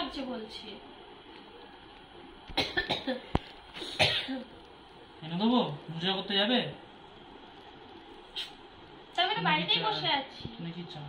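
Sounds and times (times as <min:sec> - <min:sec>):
person coughing: 0:02.6 - 0:04.5.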